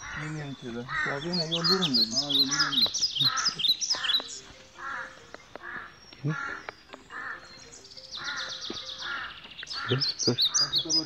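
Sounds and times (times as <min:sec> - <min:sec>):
crows cawing: 0:00.0 - 0:11.0
small bird trilling: 0:00.0 - 0:11.0.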